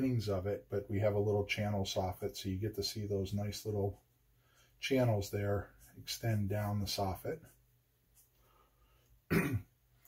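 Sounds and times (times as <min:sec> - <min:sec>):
man clearing his throat: 0:09.3 - 0:09.8.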